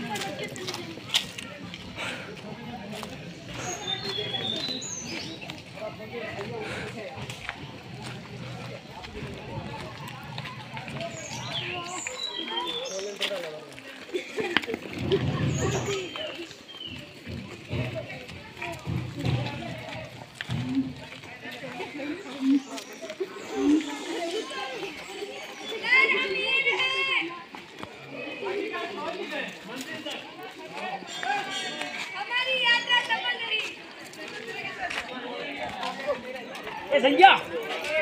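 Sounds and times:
crowd chatter: 0.0s - 38.0s
people talking indistinctly: 0.0s - 38.0s.

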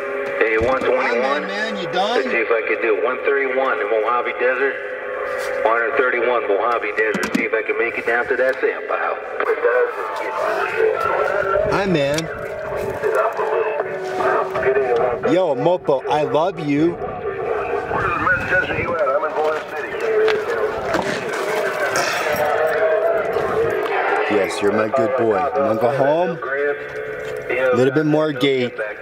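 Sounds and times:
voices over radio speaker: 0.0s - 29.0s.

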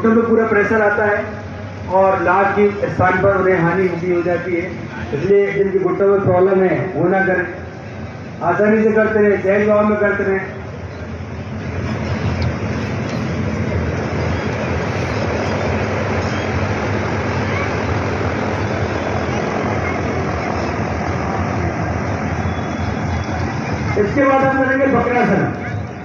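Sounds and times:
steady rushing noise: 0.0s - 26.0s.

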